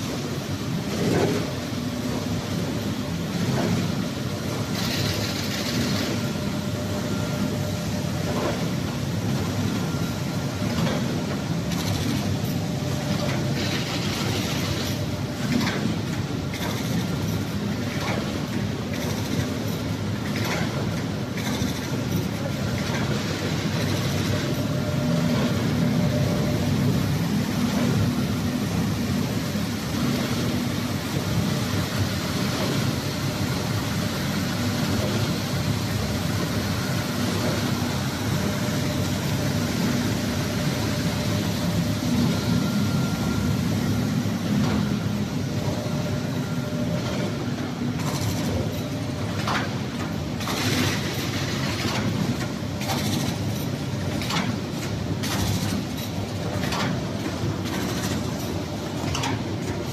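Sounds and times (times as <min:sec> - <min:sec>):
folder-gluer machine running: 0:00.0 - 0:59.9.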